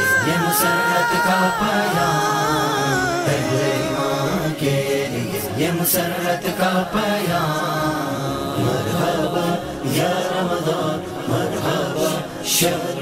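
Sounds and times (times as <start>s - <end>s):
person chanting gliding notes: 0.0s - 5.3s.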